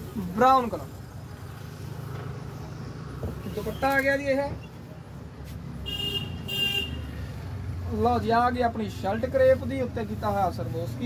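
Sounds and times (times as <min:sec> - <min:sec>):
low traffic rumble: 0:00.0 - 0:11.0
vehicle horn toots: 0:05.8 - 0:07.0.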